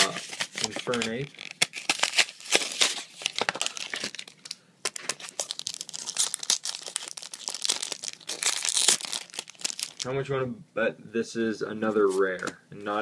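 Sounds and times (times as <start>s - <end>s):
foil pack tearing open: 0.0s - 10.1s
foil wrapper crinkling: 0.0s - 10.1s.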